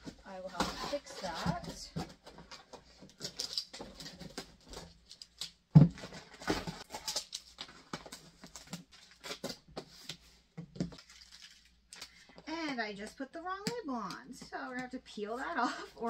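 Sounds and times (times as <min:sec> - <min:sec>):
cardboard box being handled: 0:00.4 - 0:02.9.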